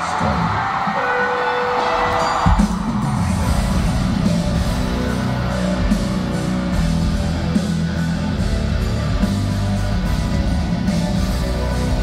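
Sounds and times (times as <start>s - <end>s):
crowd cheering: 0.0s - 12.0s
live rock band: 0.0s - 12.0s.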